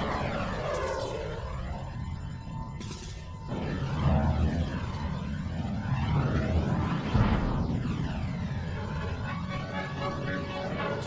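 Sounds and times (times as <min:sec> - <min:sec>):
aircraft sound effects: 0:00.0 - 0:11.0
explosions rumbling: 0:00.0 - 0:11.0.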